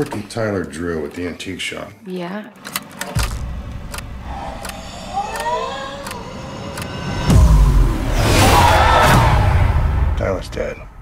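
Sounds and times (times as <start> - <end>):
sharp clicks: 2.6 - 7.0
eerie rising tones: 3.3 - 10.2
deep booming hit: 7.2 - 10.6.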